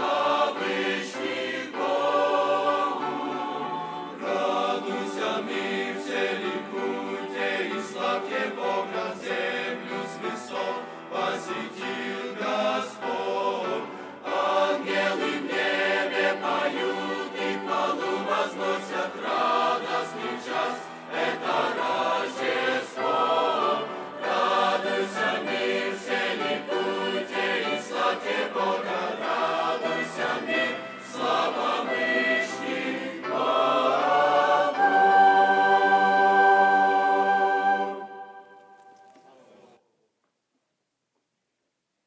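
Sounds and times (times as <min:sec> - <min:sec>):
mixed choir singing a hymn: 0:00.0 - 0:38.5.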